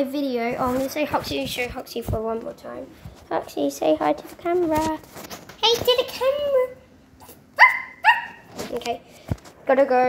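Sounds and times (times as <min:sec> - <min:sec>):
dog barking: 0:07.6 - 0:08.5.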